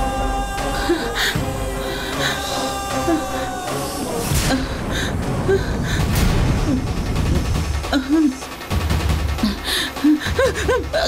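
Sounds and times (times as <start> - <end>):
steady low rumble: 0.0 - 11.0
woman gasping: 4.4 - 6.9, 9.4 - 11.0.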